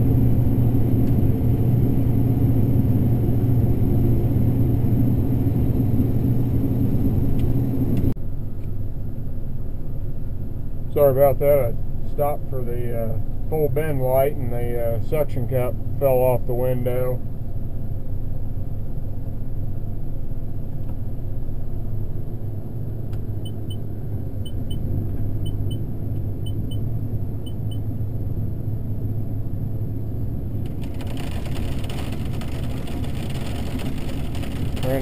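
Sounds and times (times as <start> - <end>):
combine engine hum: 0.0 - 35.0
monitor double beeps: 23.4 - 27.8.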